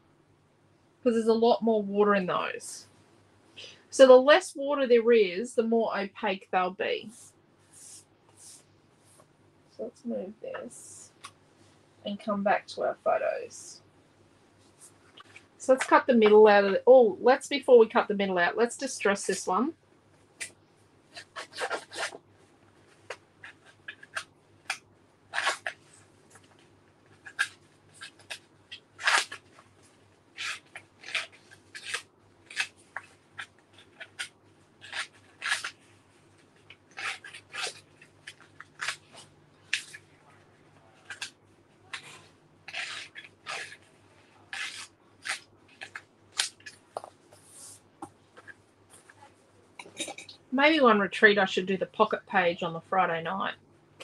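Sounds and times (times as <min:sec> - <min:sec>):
tool scraping paper edge: 0:41.9 - 0:43.9, 0:44.5 - 0:46.0.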